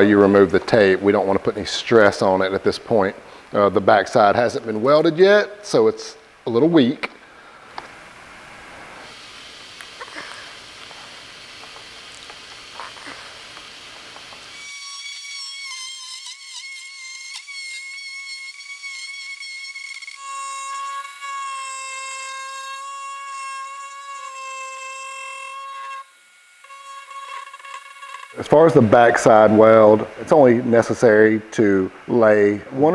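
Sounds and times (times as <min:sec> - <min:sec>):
tape being peeled off plastic: 0:09.8 - 0:15.3
die grinder whining: 0:09.8 - 0:28.6.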